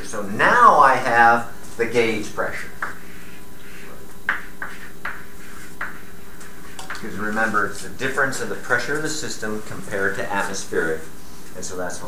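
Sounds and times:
steady room hum: 0:00.0 - 0:12.0
chalk strokes on blackboard: 0:02.5 - 0:09.2.

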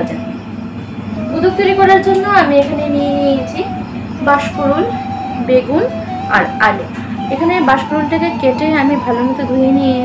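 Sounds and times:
woman talking: 0:00.0 - 0:00.4, 0:01.2 - 0:10.0.

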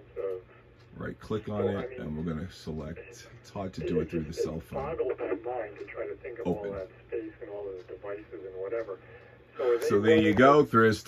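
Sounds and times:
man talking through radio speaker: 0:00.0 - 0:11.0
steady low hum: 0:00.0 - 0:11.0.

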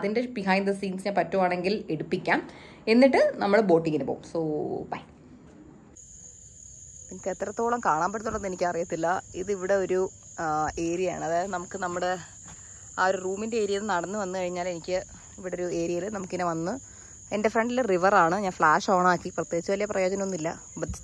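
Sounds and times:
crickets chirping: 0:00.0 - 0:21.0.

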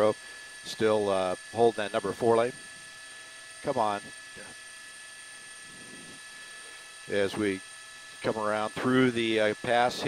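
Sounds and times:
thin steady tones: 0:00.0 - 0:10.0.

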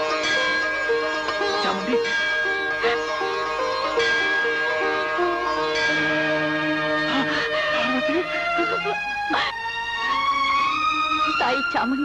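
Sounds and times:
plucked string melody: 0:00.0 - 0:09.5.

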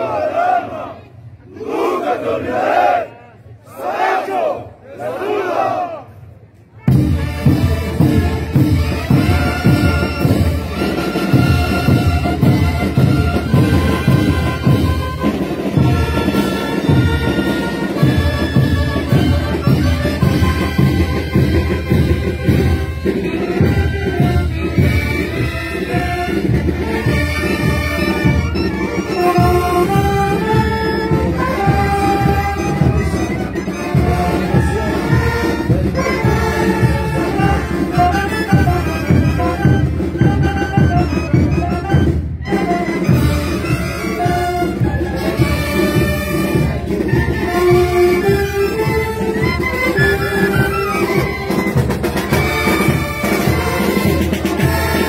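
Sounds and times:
marching band playing: 0:00.0 - 0:03.1, 0:03.7 - 0:55.0
saxophone melody: 0:07.2 - 0:55.0.

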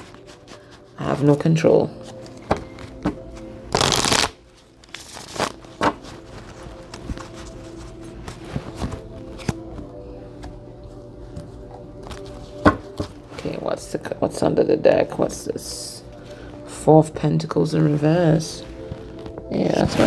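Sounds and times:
faint background music: 0:00.0 - 0:20.0
cards shuffling: 0:02.1 - 0:09.9.

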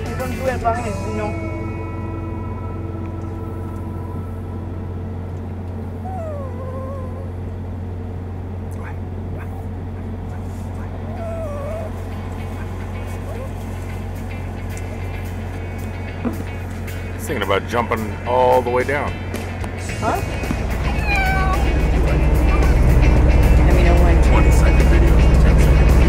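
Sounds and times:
vehicle driving drone from inside: 0:00.0 - 0:26.0
small dog whimpering: 0:05.9 - 0:07.5, 0:08.7 - 0:13.6, 0:20.8 - 0:21.8.

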